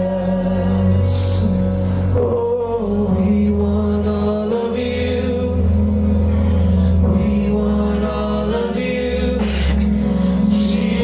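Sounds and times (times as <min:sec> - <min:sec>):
keyboard: 0:00.0 - 0:11.0.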